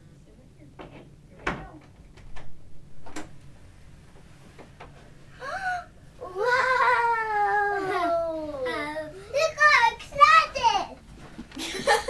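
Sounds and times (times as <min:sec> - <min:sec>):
child squealing: 0:06.2 - 0:08.9.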